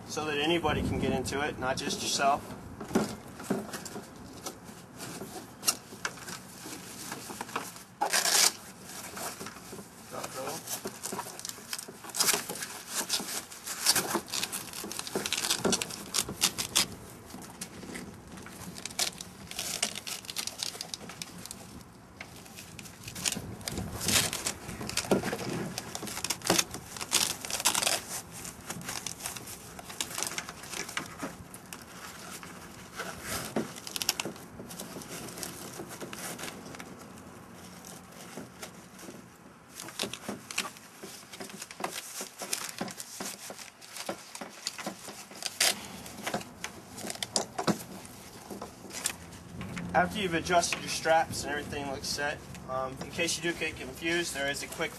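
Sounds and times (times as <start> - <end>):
backpack straps rustling and clicking: 2.0 - 54.9.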